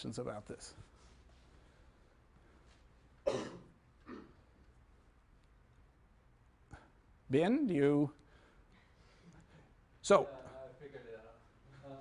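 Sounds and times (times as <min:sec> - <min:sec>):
person coughing: 0:03.2 - 0:04.4.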